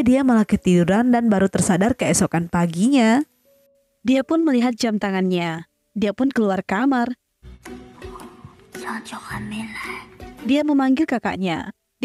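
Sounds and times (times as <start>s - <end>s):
narration: 0.0s - 3.3s, 7.9s - 11.8s
person whispering softly: 8.1s - 10.2s.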